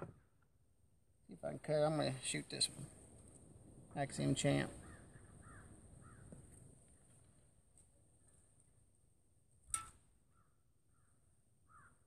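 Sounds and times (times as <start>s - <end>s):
crows cawing faintly: 4.7s - 8.7s, 10.2s - 12.0s.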